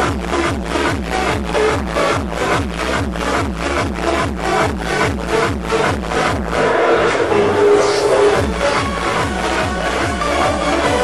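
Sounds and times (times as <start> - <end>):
electronic dance beat: 0.0 - 11.0
falling bass notes: 0.2 - 9.8.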